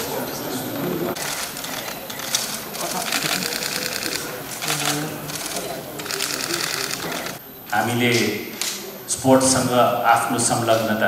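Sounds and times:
faint voices: 0.0s - 11.0s
camera shutters clicking: 1.2s - 7.4s
man speaking at a microphone: 7.7s - 11.0s.

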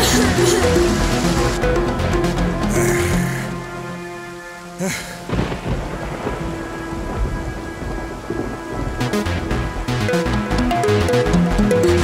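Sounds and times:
background music: 0.0s - 12.0s
rain: 0.0s - 12.0s
low thunder rumble: 5.3s - 10.1s
thunder crack: 5.3s - 10.1s.

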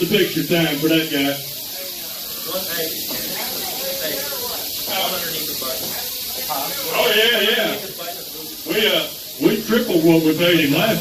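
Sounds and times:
crowd murmuring: 0.0s - 11.0s
rattlesnakes rattling: 0.0s - 11.0s.

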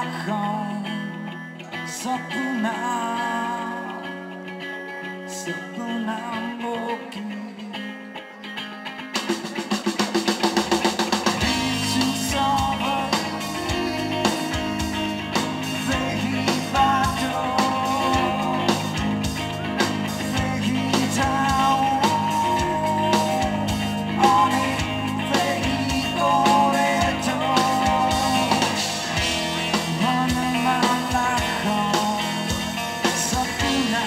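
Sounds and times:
man singing: 0.0s - 4.6s, 5.2s - 8.1s, 11.4s - 34.0s
electric guitars: 0.0s - 34.0s
rock drums: 8.8s - 34.0s.

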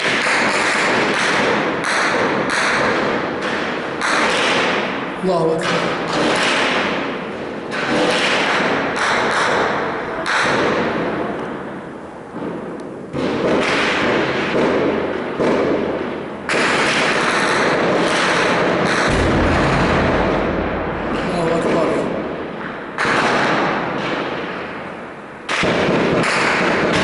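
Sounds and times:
gunshots echoing between buildings: 0.0s - 5.2s, 5.8s - 11.1s, 13.1s - 27.0s
deep rumble: 19.1s - 23.0s.

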